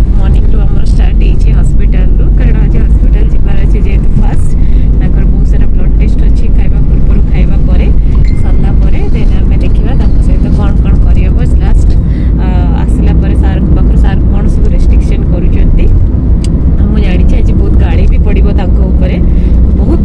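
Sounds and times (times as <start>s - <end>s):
person talking: 0.0s - 16.0s, 16.8s - 20.0s
car rumble from inside cabin: 0.0s - 20.0s.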